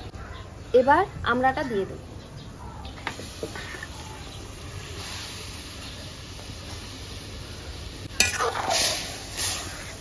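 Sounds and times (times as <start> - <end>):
faint steady sizzle: 0.1 - 10.0.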